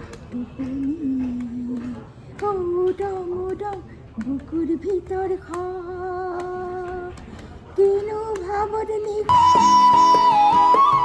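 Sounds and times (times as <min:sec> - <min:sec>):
hand claps: 0:00.0 - 0:11.0.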